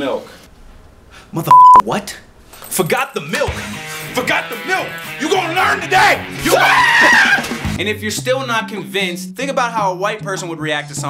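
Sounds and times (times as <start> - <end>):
background music with bass line: 3.5 - 11.0
man yelling and screaming: 4.4 - 7.6.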